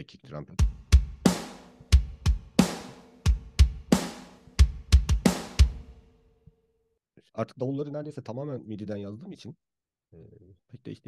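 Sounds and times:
kick drum hits: 0:00.6 - 0:05.9.

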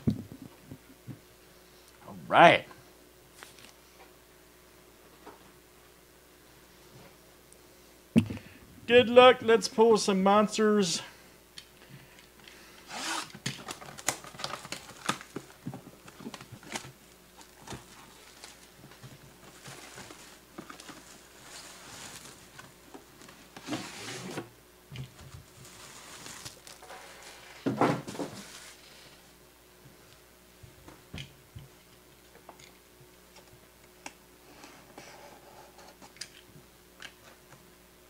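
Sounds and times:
cards and packaging rustling: 0:13.5 - 0:22.6, 0:25.2 - 0:27.4.

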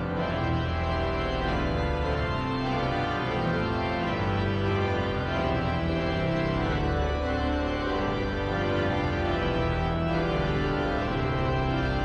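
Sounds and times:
pipe organ playing a hymn: 0:00.0 - 0:12.0.

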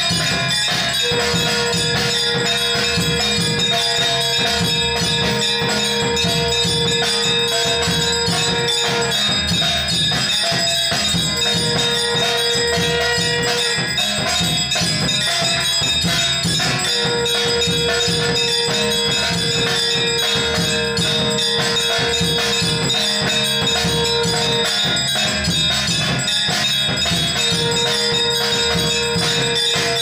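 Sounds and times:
brass hand bell and percussion: 0:00.0 - 0:30.0
long held tone: 0:00.9 - 0:14.2, 0:15.0 - 0:30.0.

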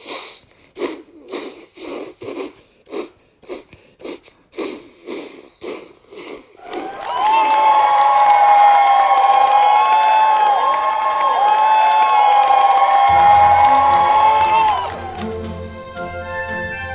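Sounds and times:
crowd cheering and shouting: 0:06.6 - 0:16.9
music: 0:13.1 - 0:16.9.

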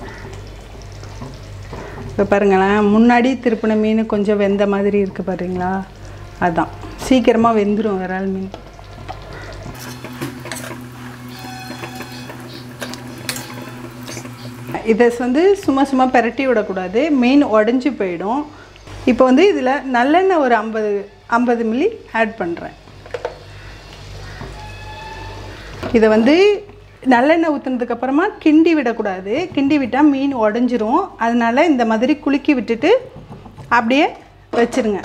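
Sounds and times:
curry sizzling in a pan: 0:05.2 - 0:16.0, 0:23.0 - 0:25.7
spatula scraping a pan: 0:09.8 - 0:14.7.

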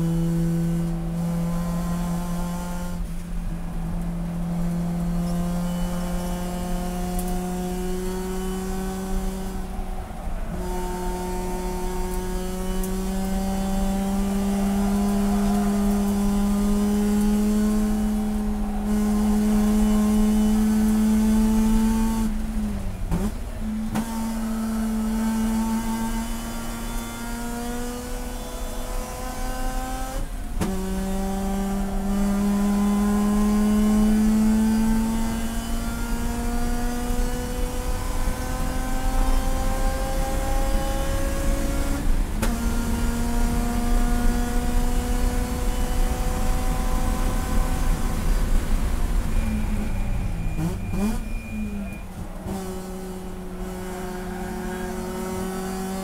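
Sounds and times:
race car engine at full throttle: 0:00.0 - 0:56.0.

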